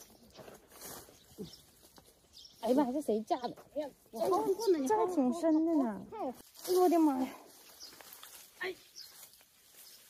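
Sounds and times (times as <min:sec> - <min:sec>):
rustling vines and leaves: 0:00.0 - 0:10.0.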